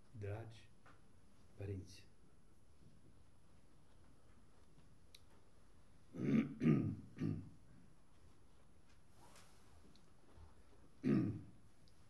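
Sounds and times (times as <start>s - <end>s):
man clearing his throat: 6.1s - 7.6s, 11.0s - 11.6s.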